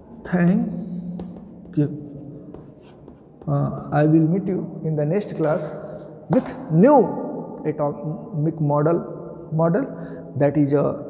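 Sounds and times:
chalk scratching on blackboard: 0.8s - 3.4s.

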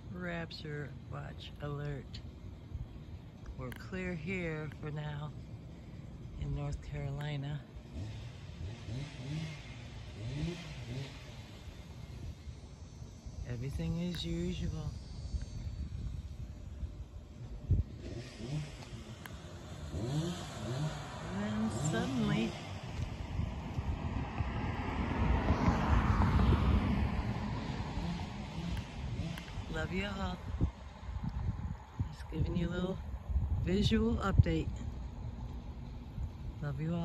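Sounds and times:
vehicle passing: 0.0s - 37.0s
engine revving: 3.6s - 37.0s
wind buffeting microphone: 11.5s - 37.0s.

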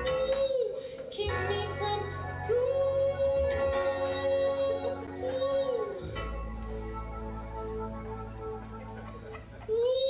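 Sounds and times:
woman singing: 0.0s - 6.4s, 9.7s - 10.0s.

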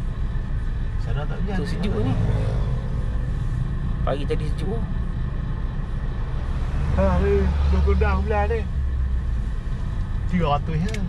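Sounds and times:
car engine low rumble: 0.0s - 11.0s.

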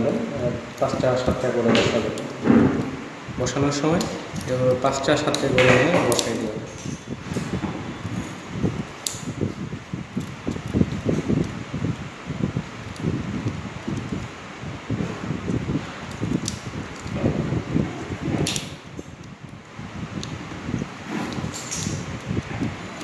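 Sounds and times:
rustling and handling of wire: 0.0s - 23.0s
steady hiss: 0.0s - 23.0s.

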